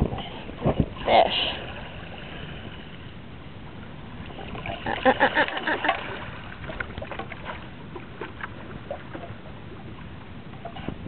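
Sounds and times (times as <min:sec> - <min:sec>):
water lapping against paddleboard: 0:00.0 - 0:11.0
wind rumble on microphone: 0:00.0 - 0:11.0.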